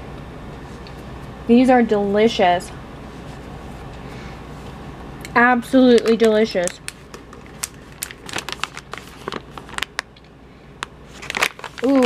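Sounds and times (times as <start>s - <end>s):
plastic snack pouch crinkling: 5.9s - 10.2s, 11.1s - 12.0s.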